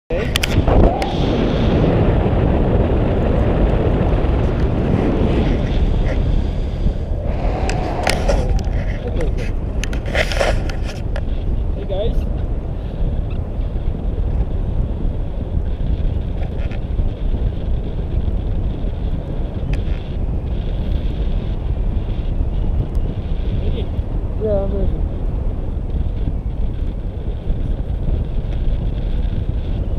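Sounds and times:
wind buffeting microphone: 0.1 - 29.9.

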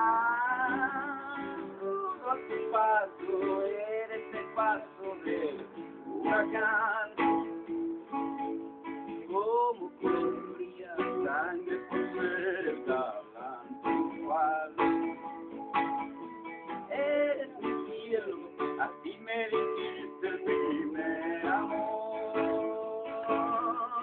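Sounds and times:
acoustic guitar plucked: 0.0 - 24.0.

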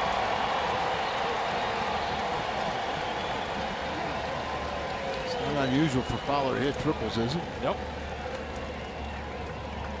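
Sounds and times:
stadium crowd murmur: 0.0 - 10.0.

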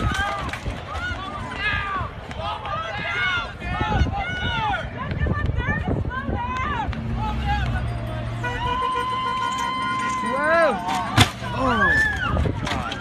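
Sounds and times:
people shouting and crying out: 0.0 - 13.0.

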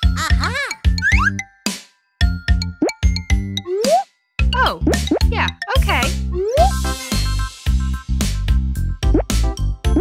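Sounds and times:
bouncy children's music: 0.0 - 10.0.

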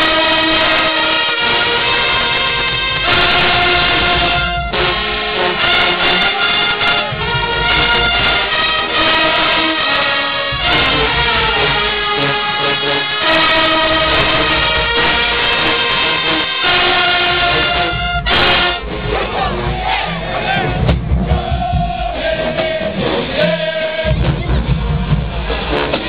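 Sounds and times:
brass section playing chords: 0.0 - 26.0.

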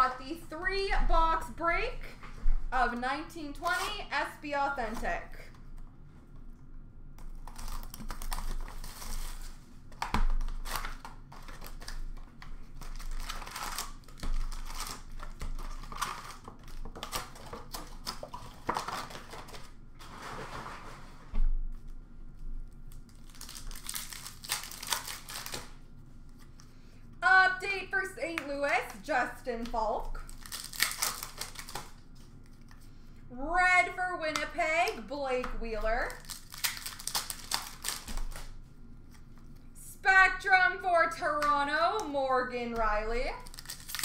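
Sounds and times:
foil packs crinkling and tearing: 7.3 - 19.8, 22.9 - 25.8, 28.5 - 32.9, 35.8 - 38.6, 43.3 - 44.0.

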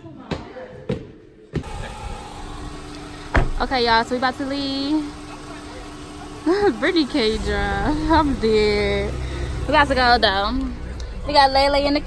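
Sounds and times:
steady low hum: 1.6 - 12.0.

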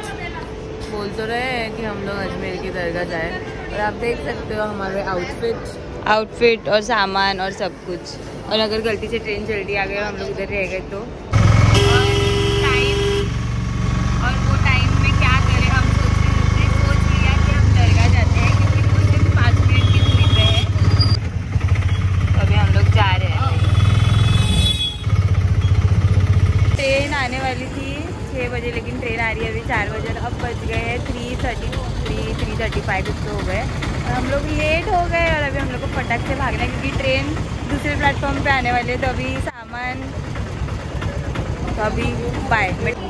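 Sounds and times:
people talking: 0.0 - 11.1, 11.8 - 13.0, 14.2 - 20.7, 22.3 - 23.6, 26.8 - 40.3, 40.9 - 43.0
auto-rickshaw engine running: 0.0 - 43.0
street noise: 0.0 - 43.0.

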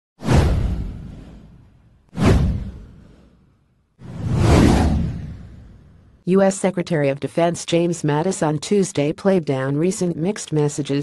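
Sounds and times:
swoosh with deep low rumble: 4.0 - 6.2.

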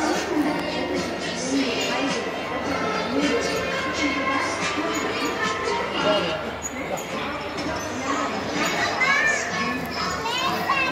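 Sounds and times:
children chattering and calling out: 0.0 - 10.9
hubbub of a busy play area: 0.0 - 10.9.

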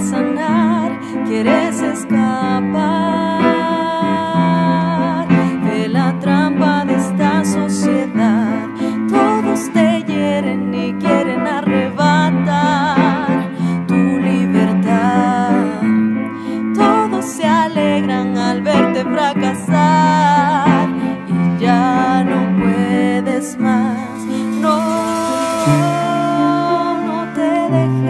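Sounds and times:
woman singing with vibrato: 0.0 - 28.0
band playing blues: 23.6 - 27.5.

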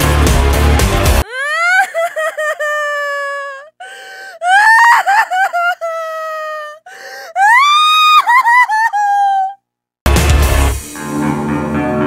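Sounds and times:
person wailing and sobbing: 1.2 - 9.6.

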